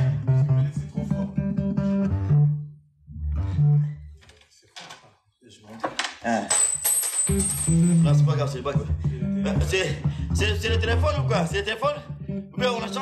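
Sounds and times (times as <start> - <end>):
plucked electric guitar: 0.0 - 2.6
electric bass notes: 0.0 - 4.2, 7.9 - 13.0.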